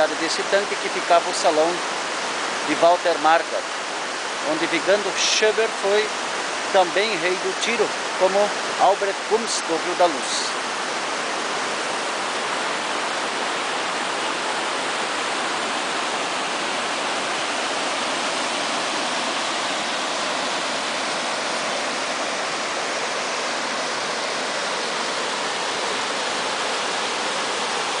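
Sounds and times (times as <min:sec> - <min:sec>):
creek water rushing over weir: 0:00.0 - 0:28.0.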